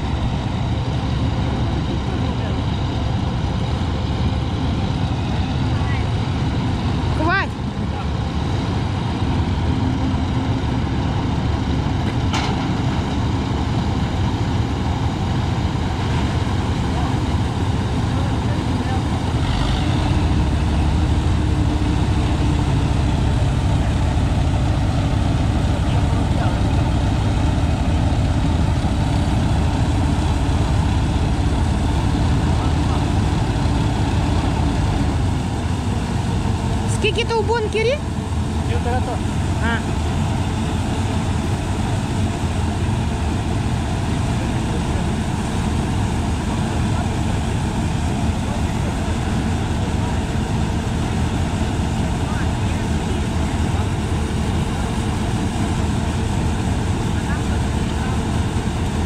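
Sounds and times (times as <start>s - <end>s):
combine harvester running: 0.0s - 59.0s.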